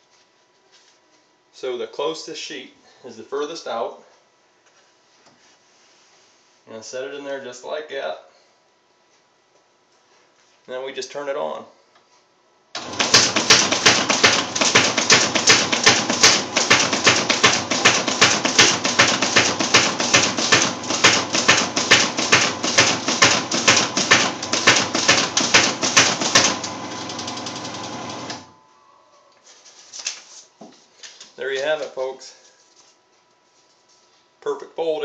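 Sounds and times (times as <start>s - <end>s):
paper folder clattering: 12.8s - 26.7s
machine motor running: 12.8s - 28.6s.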